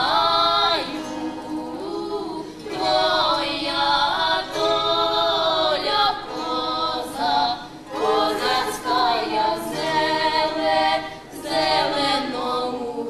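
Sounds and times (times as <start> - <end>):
women singing folk song: 0.0 - 13.0.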